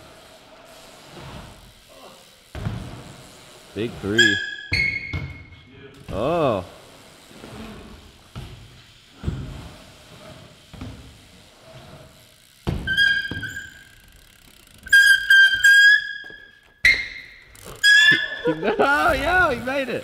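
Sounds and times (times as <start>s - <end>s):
bike tyres rolling on wooden ramps: 0.0s - 20.0s.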